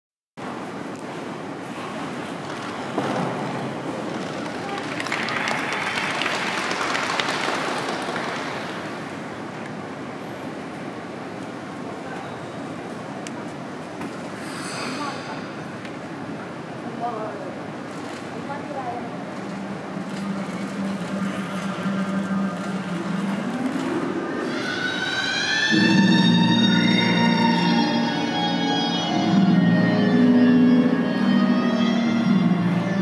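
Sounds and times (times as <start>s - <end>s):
background noise: 0.4s - 33.0s
audience applauding: 4.2s - 8.9s.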